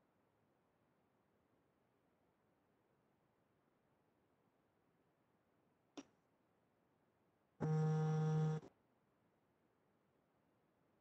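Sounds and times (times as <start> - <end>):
electronic buzzing tone: 7.6 - 8.7.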